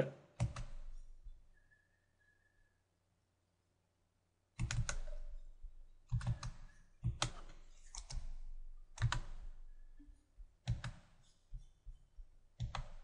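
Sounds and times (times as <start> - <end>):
mouse and keyboard clicks: 4.6 - 5.4, 6.1 - 9.5, 10.6 - 11.7, 12.6 - 13.0.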